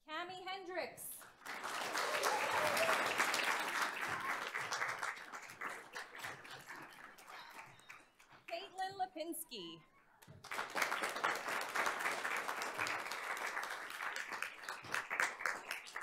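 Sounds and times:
small group applauding: 0:01.2 - 0:08.7, 0:10.2 - 0:16.0.

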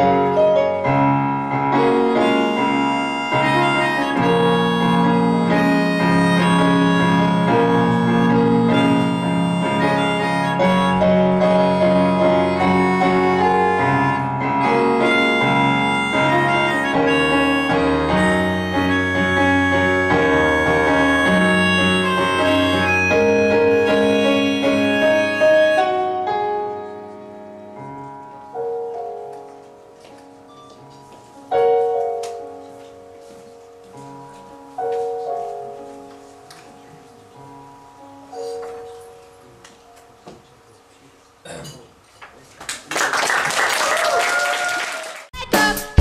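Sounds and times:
woodwind melody: 0:00.0 - 0:29.4
keyboard piano chords: 0:00.0 - 0:41.6.

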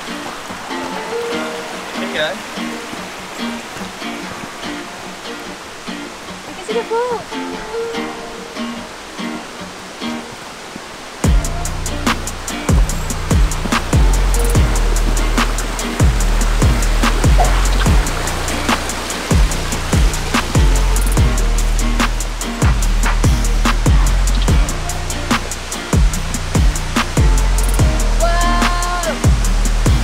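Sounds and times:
plucked string tune: 0:00.0 - 0:30.0
drum beat with bass drum: 0:11.2 - 0:30.0.

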